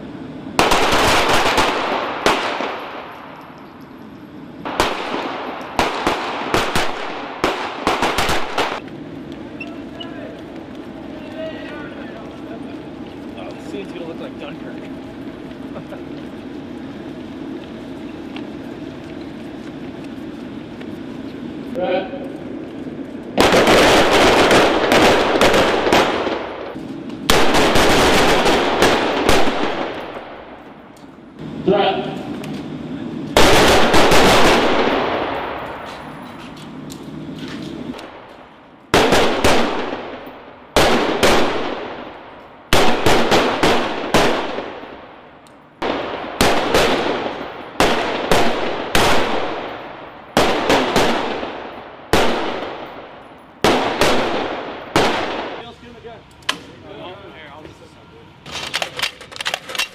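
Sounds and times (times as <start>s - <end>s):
echoing gunshots: 0.5s - 3.4s, 4.6s - 8.8s, 22.9s - 30.9s, 33.3s - 35.9s, 37.9s - 55.8s.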